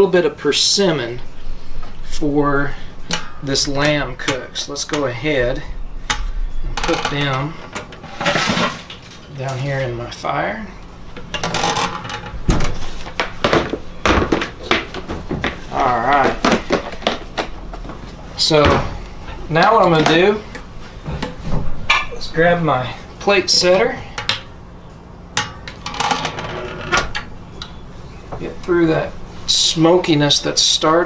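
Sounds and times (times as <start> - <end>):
clattering and scraping: 2.7 - 9.6, 11.1 - 22.3, 25.4 - 27.3
grill gear clinking and knocking: 11.1 - 18.8, 21.1 - 22.5.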